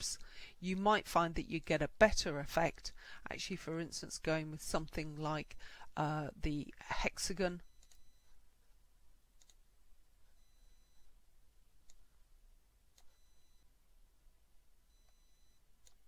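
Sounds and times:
faint computer mouse clicks: 9.4s - 9.6s.

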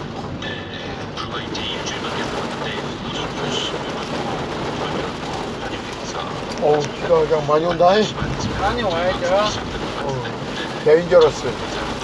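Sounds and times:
rain on car windshield: 0.0s - 12.0s
tyre noise on wet road: 0.0s - 12.0s.

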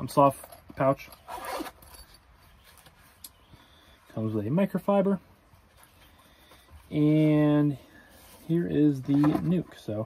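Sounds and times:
zipper pulled open: 1.1s - 2.2s.

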